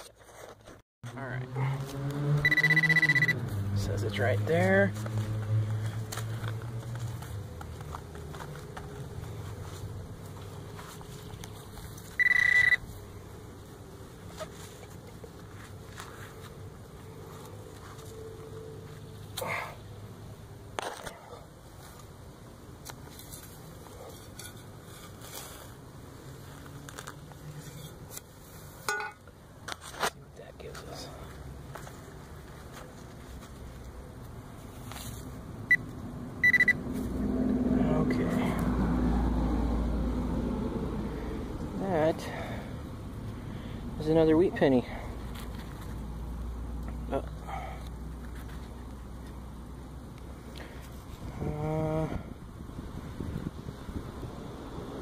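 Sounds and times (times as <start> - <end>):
metal detector beeps: 2.4 - 3.4, 12.2 - 12.8, 36.4 - 36.8
digging scrapes in soil: 23.0 - 28.9.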